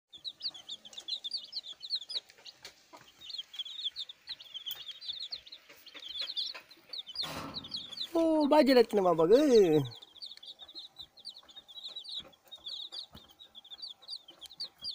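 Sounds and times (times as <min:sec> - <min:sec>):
chicks peeping: 0:00.1 - 0:14.9.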